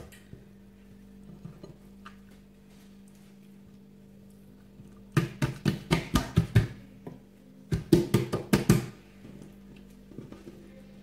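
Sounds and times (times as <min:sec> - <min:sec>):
hand slapping dough on worktop: 0:05.1 - 0:06.8, 0:07.7 - 0:09.0.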